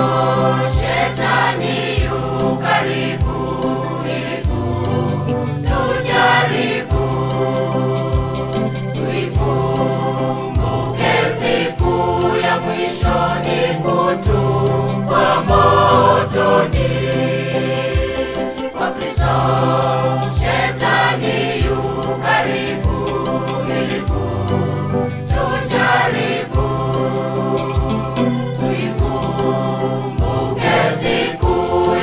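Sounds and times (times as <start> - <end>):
choir singing a hymn in harmony: 0.0 - 32.0.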